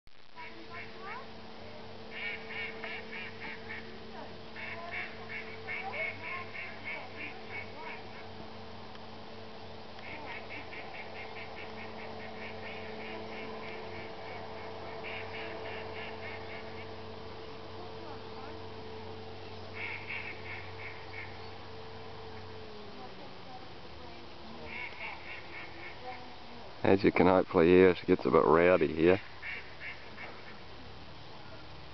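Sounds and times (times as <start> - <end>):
low hum: 0.1 - 31.9
ducks calling: 0.4 - 1.3, 2.0 - 8.6, 9.4 - 23.1, 24.2 - 26.6, 27.2 - 30.7.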